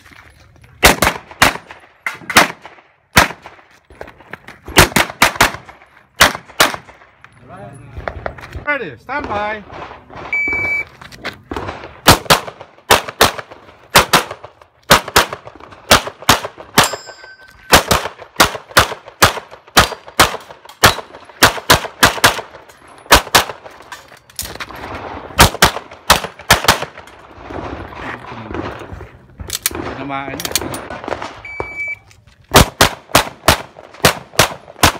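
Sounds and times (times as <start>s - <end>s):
metallic ring of steel target: 16.8s - 17.8s.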